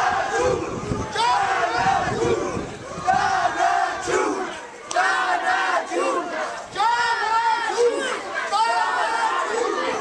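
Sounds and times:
crowd chanting in unison: 0.0 - 10.0.

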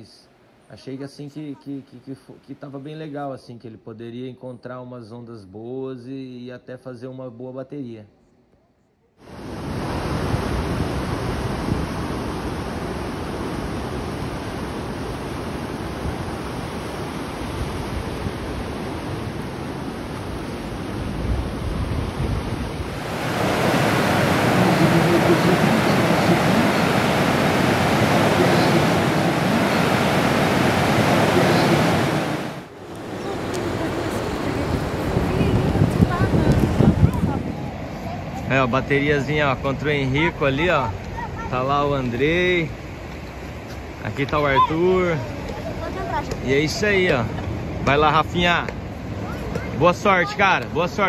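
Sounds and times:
ocean surf breaking: 9.2 - 51.0
wind rumbling on microphone: 9.3 - 38.5.

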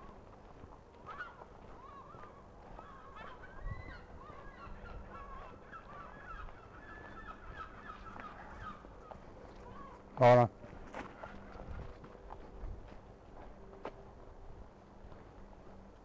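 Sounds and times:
geese honking: 1.0 - 8.9.

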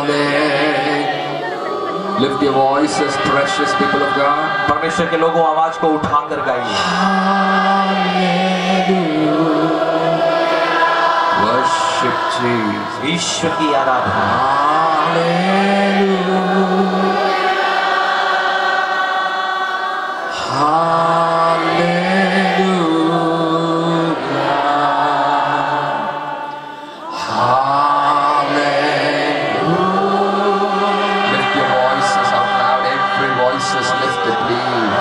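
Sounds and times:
person singing into a microphone: 0.0 - 17.5, 19.2 - 35.0
congregation singing: 0.0 - 35.0.

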